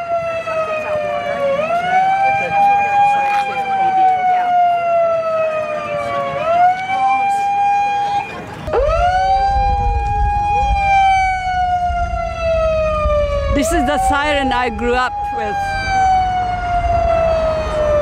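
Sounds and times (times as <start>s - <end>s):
siren wailing: 0.0s - 18.0s
low rumble: 8.7s - 18.0s.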